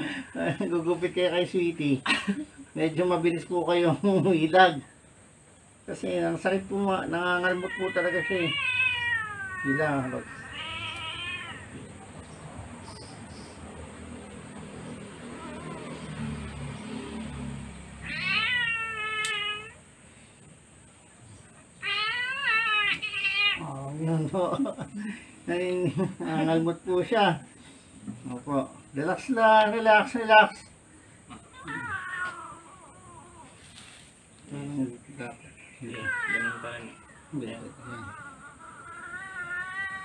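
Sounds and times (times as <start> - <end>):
cat meowing: 7.1 - 12.1, 14.9 - 16.2, 18.0 - 19.8, 21.8 - 23.9, 31.3 - 34.0, 35.8 - 40.0.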